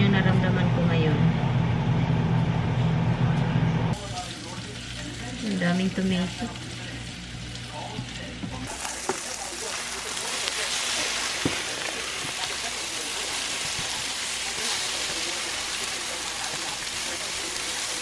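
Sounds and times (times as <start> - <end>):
eggs sizzling in frying pan: 3.9 - 18.0.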